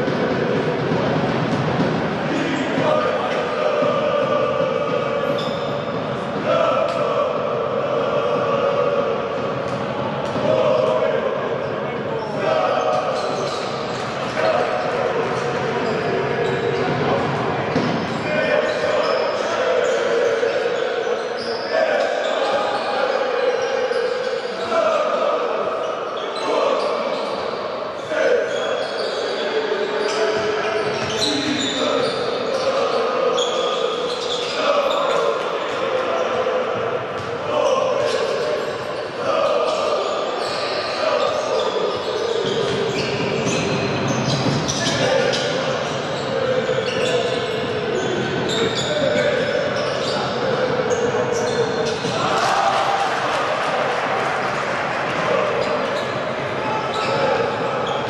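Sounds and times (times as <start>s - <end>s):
crowd chanting: 0.0s - 23.6s, 48.7s - 58.0s
sneakers squeaking: 0.0s - 52.8s, 54.5s - 58.0s.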